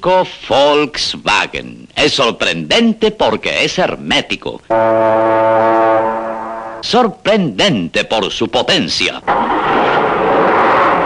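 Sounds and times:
low brass note: 0:04.7 - 0:06.8.

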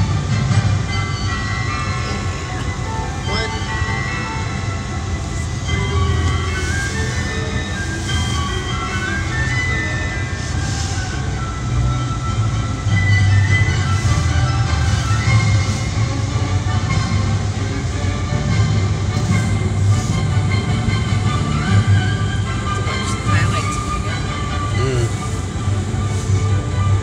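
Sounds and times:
holiday melody: 0:00.0 - 0:27.0.

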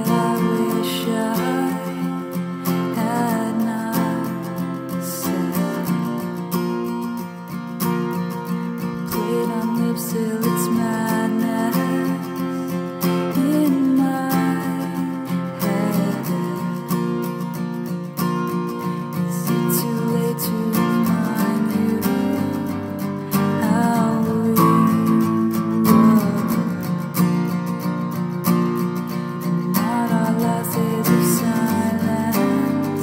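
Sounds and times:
acoustic guitar strumming: 0:00.0 - 0:33.0.

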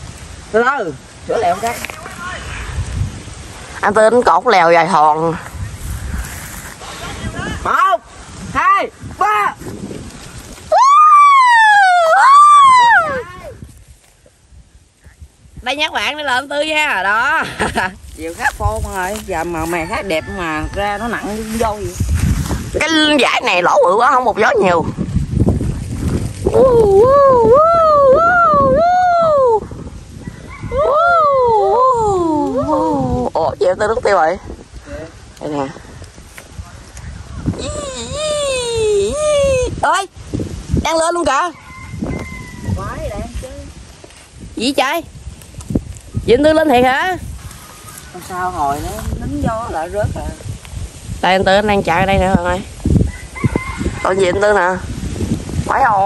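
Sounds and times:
wind buffeting microphone: 0:00.0 - 0:56.0
person crying out high: 0:10.7 - 0:13.6, 0:26.6 - 0:29.6, 0:30.7 - 0:33.2, 0:37.6 - 0:39.8
person's high-pitched shout: 0:26.5 - 0:29.6.

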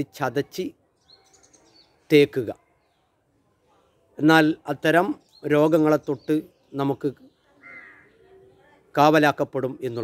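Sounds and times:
man speaking: 0:02.1 - 0:02.6, 0:04.2 - 0:07.2, 0:08.9 - 0:10.0
bird calling: 0:05.2 - 0:08.8.

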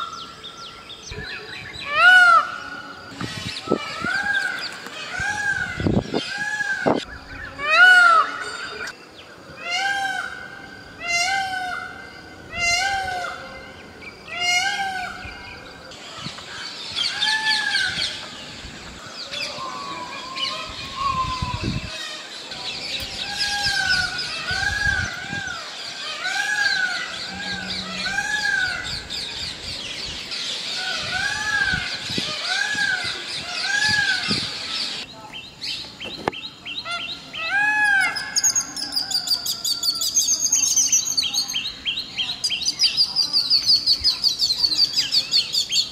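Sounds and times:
small birds chirping: 0:13.7 - 0:45.9
peafowl calling: 0:23.2 - 0:29.8.

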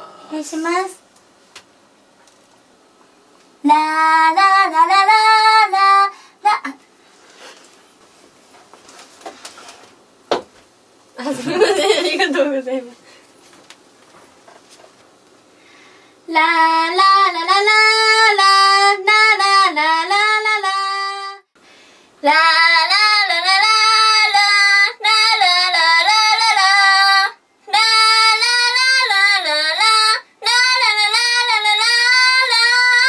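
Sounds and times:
woman singing: 0:03.6 - 0:06.8, 0:16.3 - 0:21.4, 0:22.2 - 0:33.0
singer breathing: 0:06.1 - 0:06.4, 0:13.0 - 0:13.4, 0:15.5 - 0:16.3, 0:21.6 - 0:22.2.

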